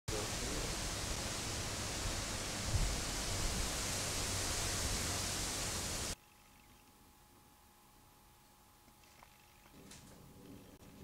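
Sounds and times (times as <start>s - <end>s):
steady rushing noise: 0.1s - 6.2s.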